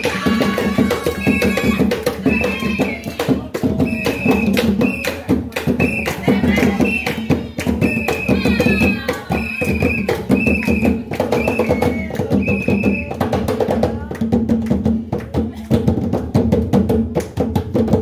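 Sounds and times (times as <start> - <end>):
hand drums fast rhythm: 0.0 - 18.0.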